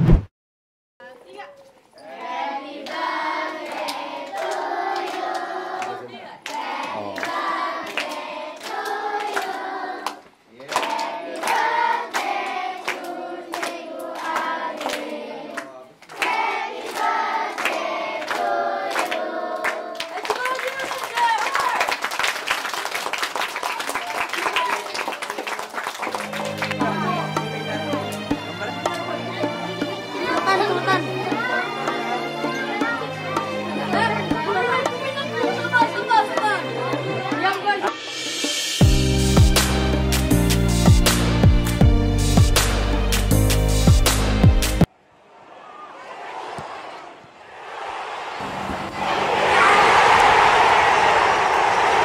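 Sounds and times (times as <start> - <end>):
children clapping in time: 3.6 - 29.2
applause with voices: 3.8 - 29.1.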